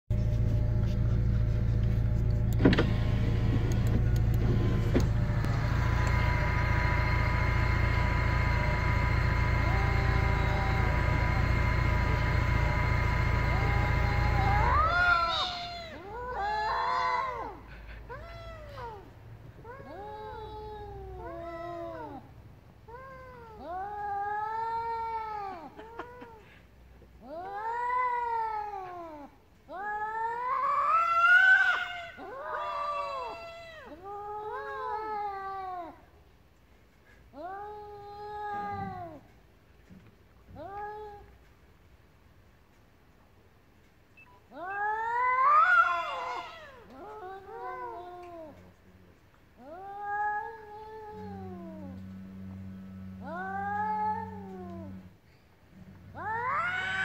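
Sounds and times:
mechanical drone: 1.1 - 15.5, 51.2 - 55.1
cats yowling: 4.9 - 22.3, 22.9 - 26.5, 27.2 - 36.1, 37.4 - 39.3, 44.5 - 48.8, 49.6 - 55.1, 56.0 - 57.0.

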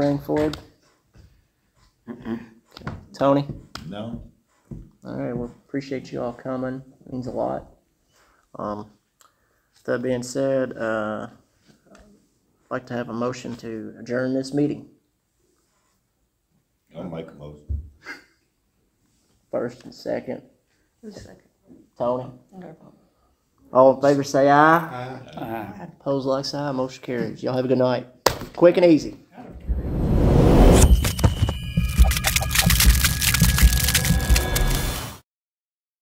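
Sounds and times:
rush of clicks and ticks: 31.8 - 35.0.

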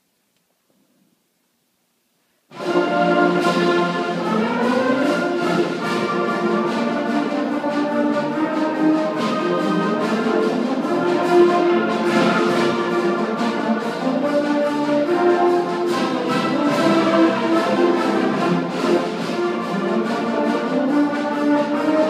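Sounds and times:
concert band playing: 2.5 - 22.0.

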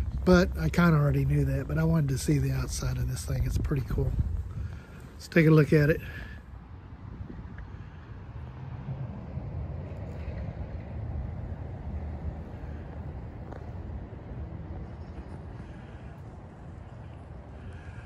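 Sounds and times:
wind on microphone: 0.0 - 5.2, 6.0 - 17.5
road traffic rumble: 0.0 - 18.0.

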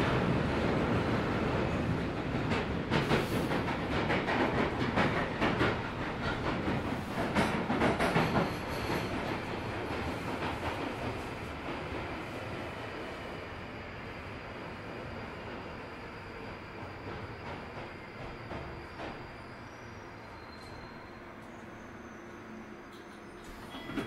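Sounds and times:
train rumbling in tunnel: 0.0 - 24.0.

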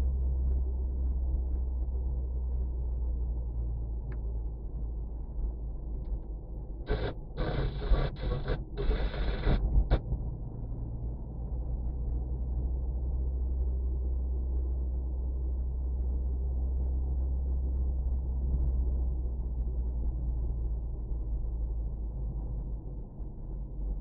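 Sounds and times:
car driving rumble inside cabin: 0.0 - 24.0.

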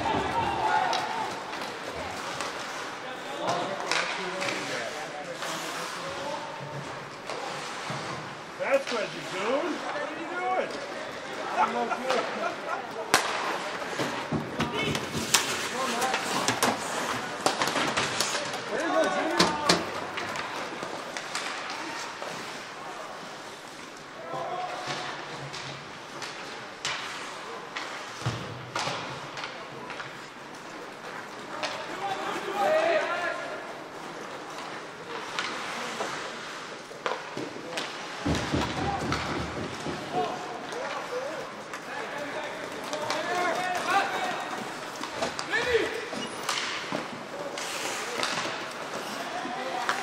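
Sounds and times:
people shouting: 0.0 - 1.6
hockey sticks and puck clacking: 0.0 - 50.0.

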